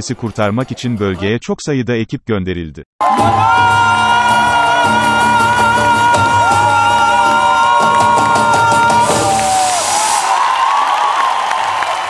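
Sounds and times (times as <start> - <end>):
audience cheering: 3.0 - 12.0.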